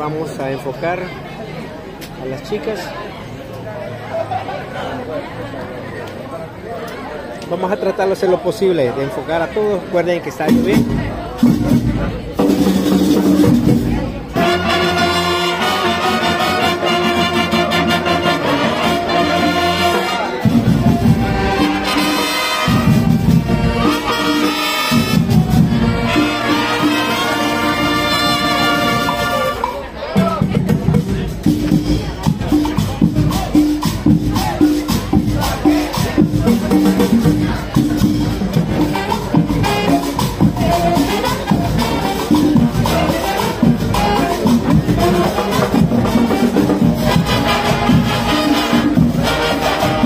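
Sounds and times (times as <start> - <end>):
steady drums: 10.3 - 50.0
brass chords: 10.6 - 29.9, 31.4 - 50.0
shaker percussion: 28.7 - 50.0.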